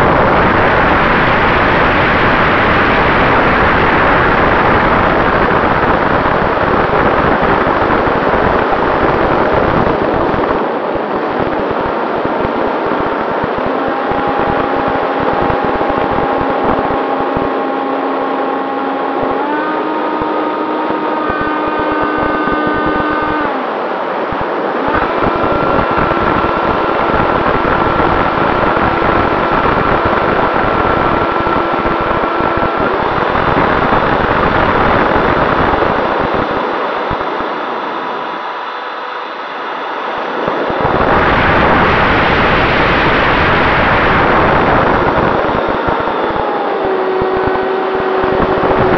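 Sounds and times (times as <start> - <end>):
electric ducted fan whining: 0.0 - 48.9
wind rush on microphone: 0.0 - 48.9.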